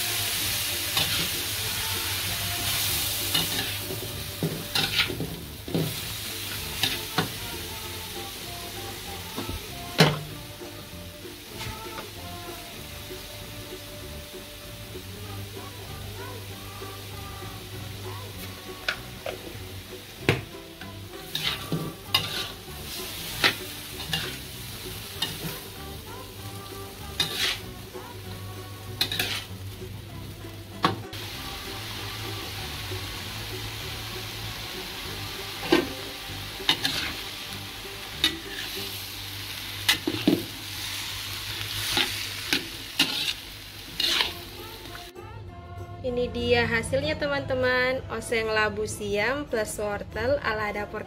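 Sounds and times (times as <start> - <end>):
vegetables sizzling in a wok: 0.0 - 45.1
metal spatula scraping a pan: 4.5 - 5.3, 21.2 - 24.5, 27.1 - 27.7, 29.0 - 29.5, 36.7 - 37.2, 41.8 - 44.5.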